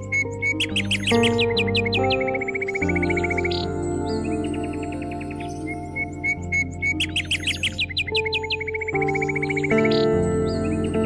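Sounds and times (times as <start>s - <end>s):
bird chirping: 0.0s - 11.0s
soft meditation music: 0.0s - 11.0s.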